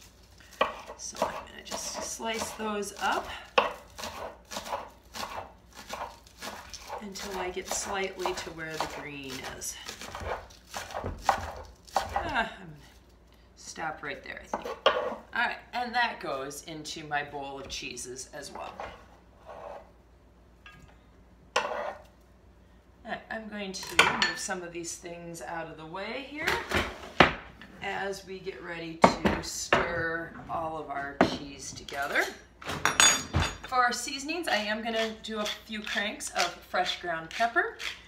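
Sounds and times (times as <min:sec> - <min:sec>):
woman speaking: 0:01.0 - 0:03.4, 0:07.0 - 0:09.9, 0:13.6 - 0:14.6, 0:15.3 - 0:18.9, 0:23.0 - 0:26.7, 0:27.8 - 0:32.4, 0:33.7 - 0:37.8
knife chopping on wooden board: 0:03.6 - 0:09.4.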